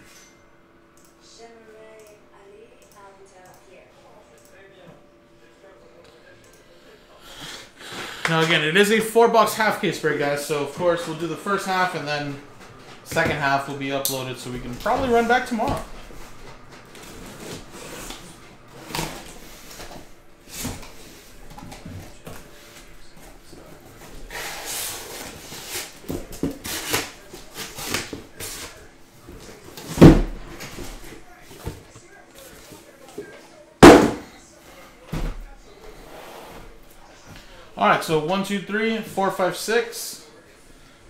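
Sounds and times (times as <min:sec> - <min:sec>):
boxes thumping on table: 0:33.8 - 0:34.3.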